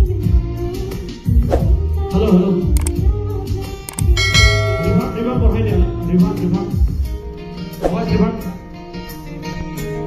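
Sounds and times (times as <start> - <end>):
backing track with steady beat: 2.8 - 7.2.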